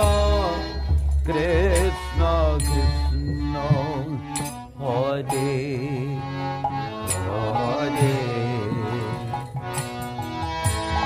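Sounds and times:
instruments playing: 0.0 - 11.0.

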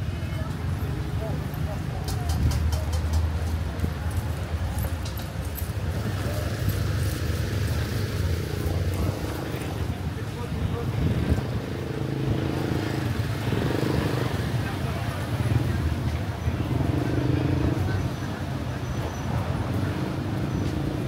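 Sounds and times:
people talking: 0.0 - 7.0, 7.7 - 21.0
road traffic rumble: 0.0 - 21.0.

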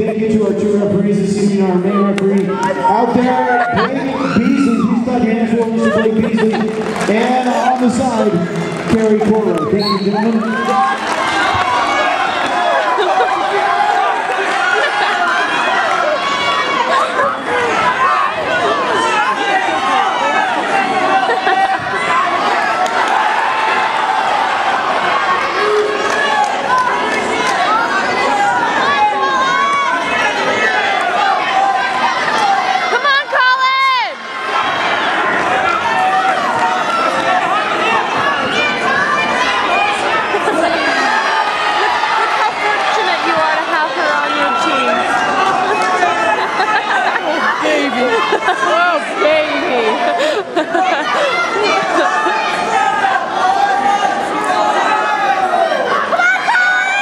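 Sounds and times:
spectators shouting and talking: 0.0 - 57.0.

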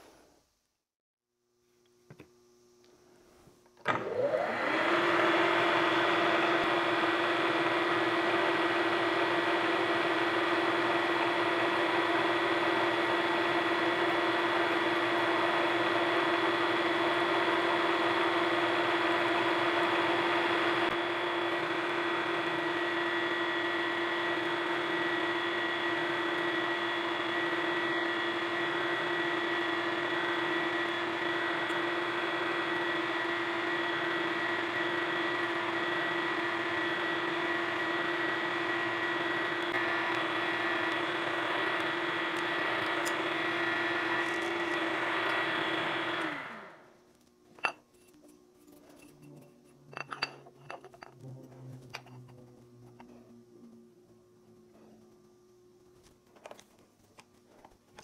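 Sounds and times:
milling machine running: 3.9 - 46.8.

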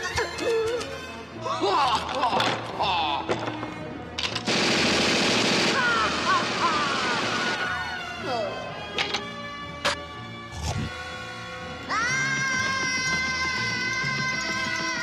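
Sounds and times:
cartoon machine gun burst: 4.5 - 7.6
orchestral music: 5.6 - 14.4.

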